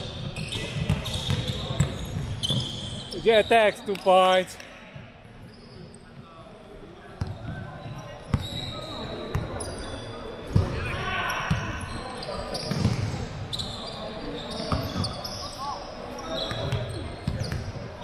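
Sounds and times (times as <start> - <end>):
sneaker squeaks: 0.0 - 3.7, 7.2 - 17.9
players' voices: 2.9 - 5.1.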